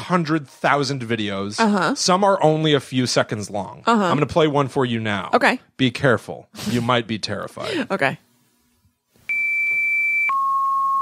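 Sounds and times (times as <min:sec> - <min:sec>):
high electronic beep: 0:09.3 - 0:11.0
lower steady electronic tone: 0:09.3 - 0:11.0.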